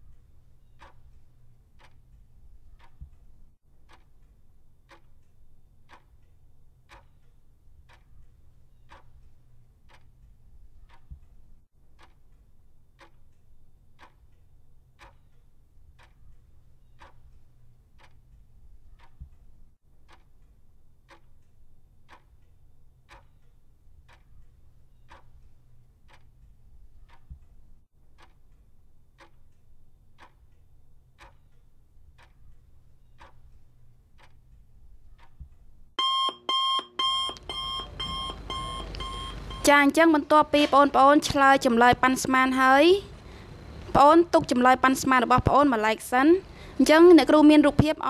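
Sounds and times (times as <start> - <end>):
clock ticking: 0.0 - 42.8, 43.7 - 48.0
alarm clock beeping: 36.0 - 40.2.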